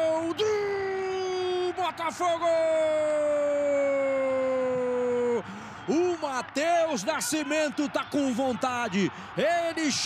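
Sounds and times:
man commentating: 0.0s - 10.0s
man shouting goal: 0.0s - 10.0s.

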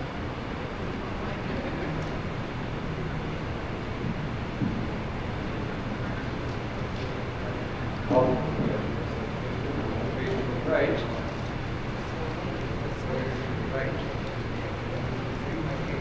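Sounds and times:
room noise hum and hiss: 0.0s - 16.0s.

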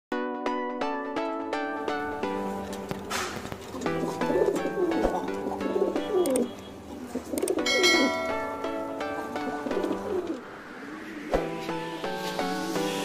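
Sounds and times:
plucked-string background music: 0.2s - 10.5s
pigeons cooing: 3.4s - 8.3s, 9.0s - 11.3s.

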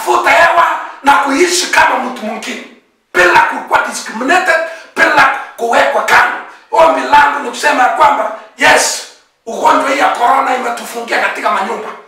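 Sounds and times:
man preaching loudly: 0.0s - 12.0s.

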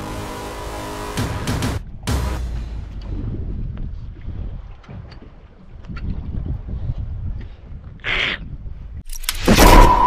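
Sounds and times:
wind buffeting microphone: 3.0s - 9.1s.

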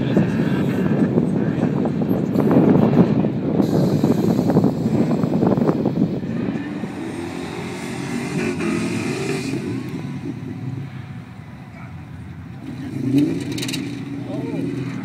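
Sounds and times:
car engine revving: 0.0s - 15.0s.

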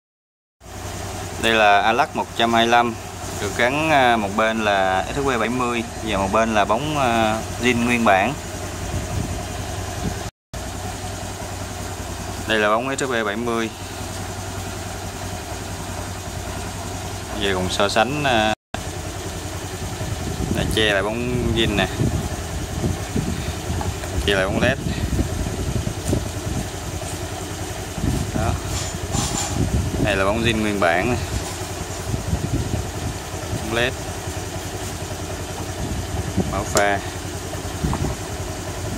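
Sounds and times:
scooter engine idling: 0.6s - 38.9s.

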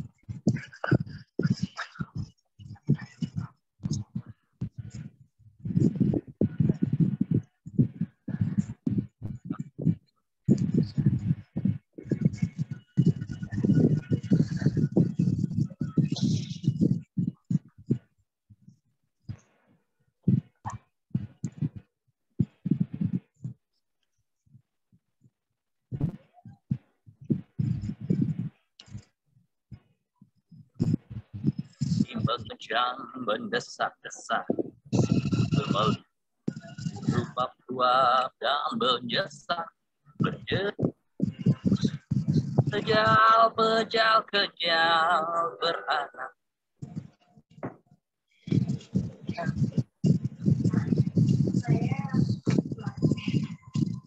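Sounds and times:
person speaking: 31.6s - 46.4s, 48.4s - 54.0s.

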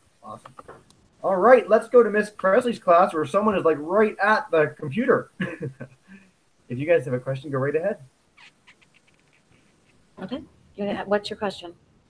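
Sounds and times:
faint high-pitched squeaks: 8.3s - 10.4s.

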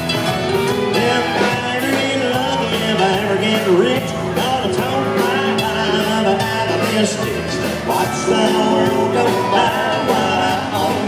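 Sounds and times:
bass: 0.0s - 11.0s
drums: 0.0s - 11.0s
electric and acoustic guitars: 0.0s - 11.0s.

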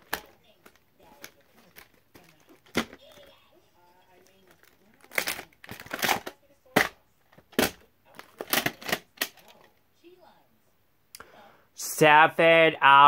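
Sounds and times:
plastic case clicking and knocking: 0.0s - 3.3s, 4.6s - 9.6s
crinkly plastic rustling: 0.0s - 9.7s.

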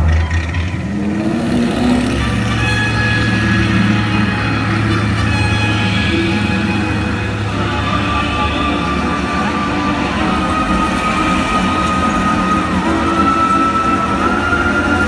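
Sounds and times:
low engine-like rumble: 0.0s - 15.0s.

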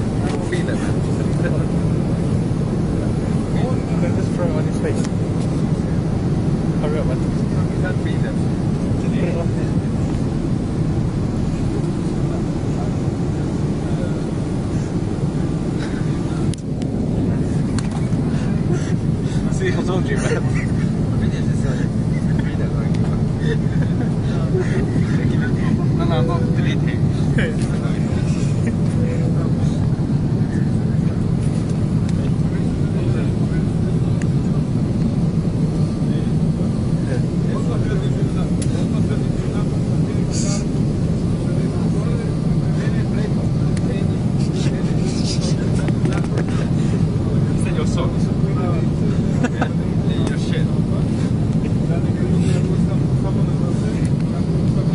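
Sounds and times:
airplane cabin drone: 0.0s - 54.9s.

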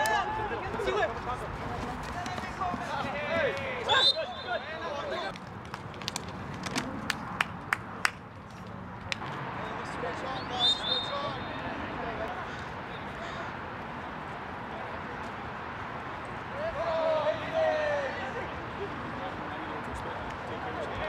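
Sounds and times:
players shouting: 0.0s - 5.3s, 16.5s - 19.0s
high whistle-like tone: 10.4s - 11.4s.

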